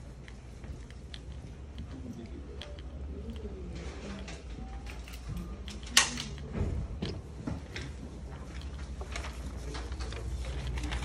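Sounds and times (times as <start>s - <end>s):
steady low hum: 0.0s - 11.0s
faint low voice: 1.8s - 11.0s.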